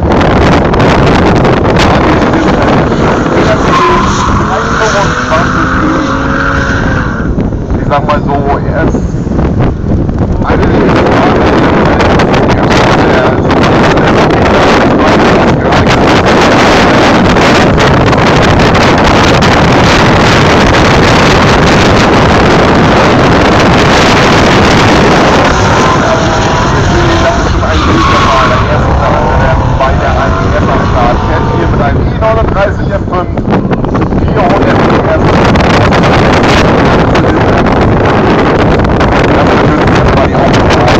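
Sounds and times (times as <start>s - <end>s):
car engines at high revs: 0.0s - 40.9s.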